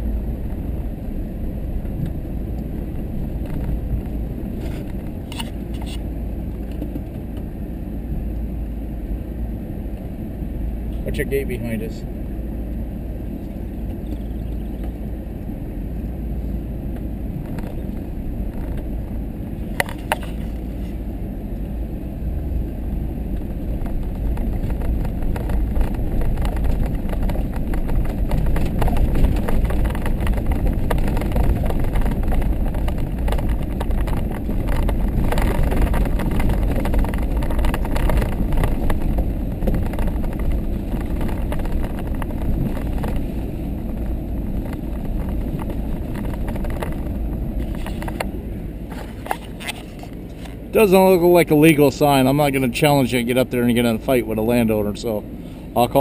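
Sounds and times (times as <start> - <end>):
vehicle engine and tyres rumbling: 0.0 - 56.0
sharp knocks and rattles: 23.4 - 50.6.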